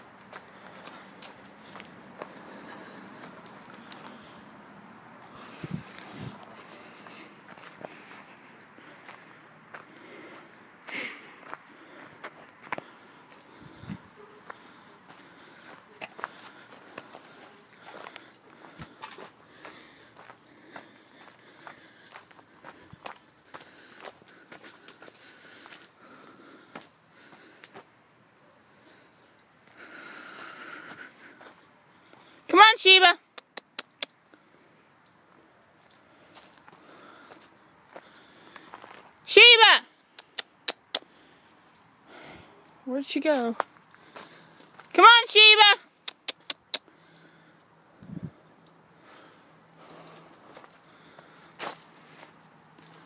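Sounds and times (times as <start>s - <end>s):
footsteps on dirt path: 0.0s - 28.2s, 29.6s - 32.4s, 35.7s - 39.2s, 43.2s - 45.0s, 49.0s - 53.0s
high-pitched insect chorus: 0.0s - 53.0s.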